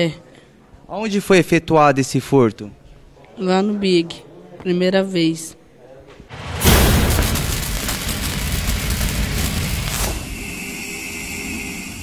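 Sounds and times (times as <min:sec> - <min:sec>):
rumbling boom: 0:06.3 - 0:10.4
sharp hit: 0:06.3 - 0:10.6
high hum: 0:06.6 - 0:12.0.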